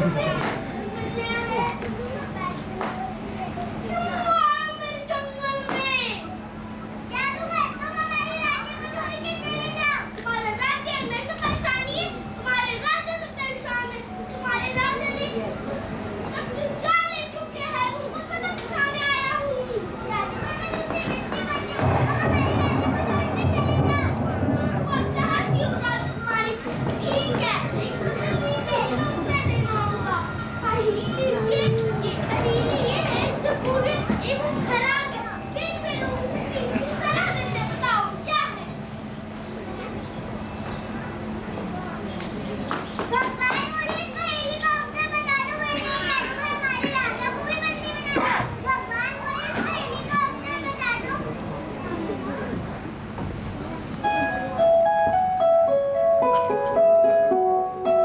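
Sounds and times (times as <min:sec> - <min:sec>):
children speaking: 0:00.0 - 0:58.0
steady low hum: 0:19.2 - 0:42.6.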